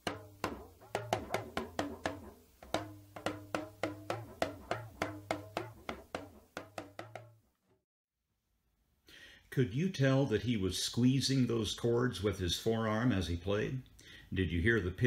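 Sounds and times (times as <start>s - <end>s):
talking drum with bending pitch: 0.0s - 7.4s.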